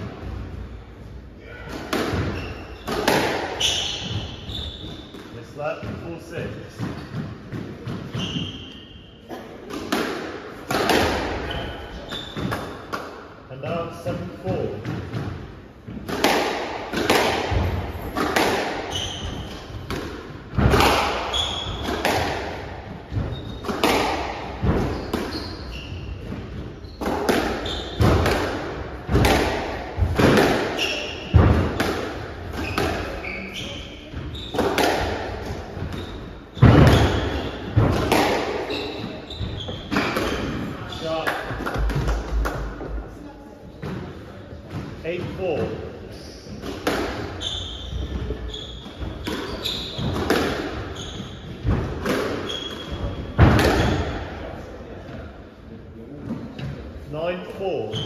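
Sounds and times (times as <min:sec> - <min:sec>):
squash ball cracking off walls: 0:01.8 - 0:03.8, 0:16.0 - 0:25.4, 0:27.0 - 0:33.2, 0:36.6 - 0:38.7, 0:51.6 - 0:54.3
shoes squeaking on wooden floor: 0:02.1 - 0:09.3, 0:10.8 - 0:12.8, 0:17.5 - 0:20.0, 0:20.8 - 0:22.2, 0:22.8 - 0:28.4, 0:30.0 - 0:43.0, 0:45.1 - 0:54.2.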